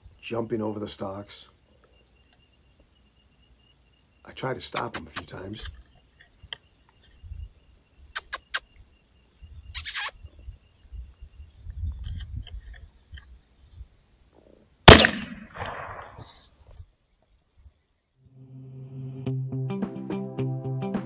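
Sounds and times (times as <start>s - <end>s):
faint short clicks: 8.2s - 8.8s
rifle shot with echo: 14.8s - 16.4s.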